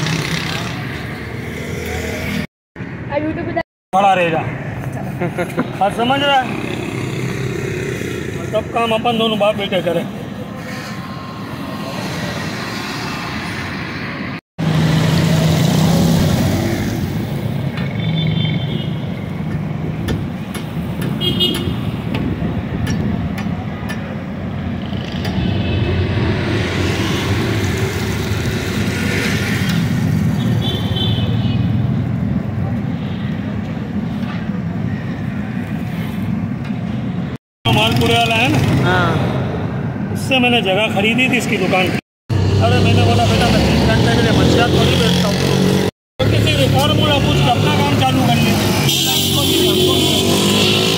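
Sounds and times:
passing vehicles: 0.0 - 50.9.

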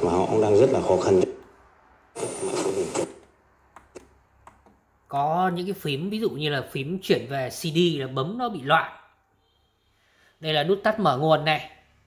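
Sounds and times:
faint radio hiss: 0.0 - 3.6.

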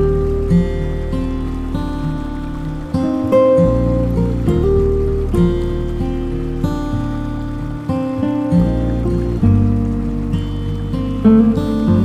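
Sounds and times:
acoustic guitar plucked notes: 0.0 - 12.0.

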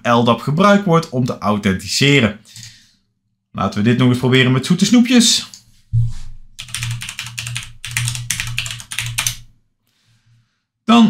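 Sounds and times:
fast typing on computer keyboard: 6.6 - 9.5.

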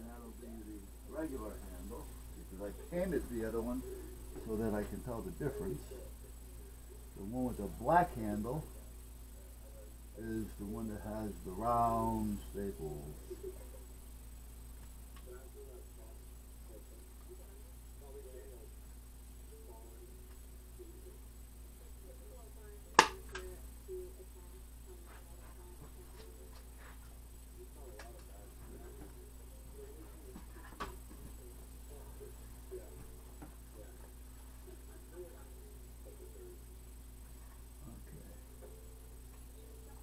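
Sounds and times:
low steady hum: 0.0 - 40.0.

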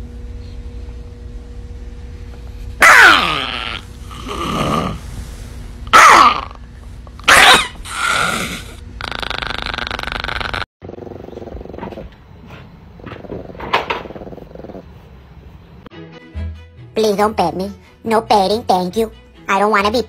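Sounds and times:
small dog snarling and growling: 2.8 - 6.6, 7.2 - 15.2.

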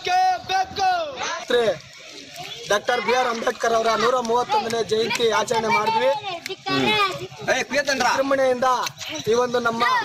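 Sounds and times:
voices nearby: 0.0 - 10.0
man talking: 2.6 - 10.0.

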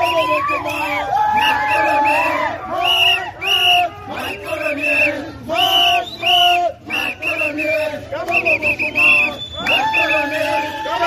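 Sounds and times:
crowd chanting and shouting: 0.0 - 11.0.

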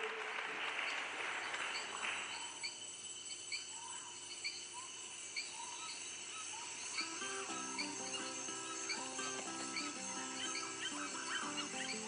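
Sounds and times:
hiss: 2.0 - 12.0.

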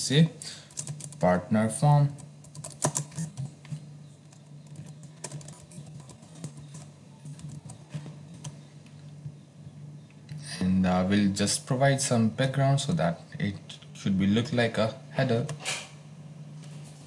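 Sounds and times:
low steady hum: 0.0 - 17.0
computer keyboard typing: 0.7 - 1.3, 2.1 - 8.6.

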